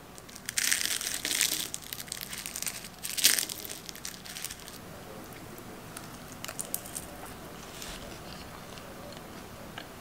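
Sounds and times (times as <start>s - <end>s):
pastry crackling and crunching: 0.1s - 8.9s.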